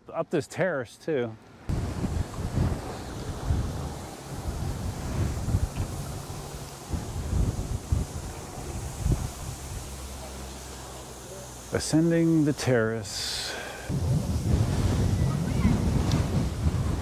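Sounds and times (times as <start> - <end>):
wind buffeting microphone: 1.7 - 10.6, 13.9 - 17.0.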